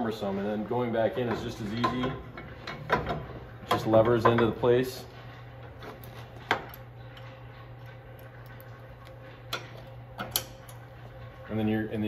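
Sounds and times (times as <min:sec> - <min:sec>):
steady low machine hum: 0:00.0 - 0:12.0.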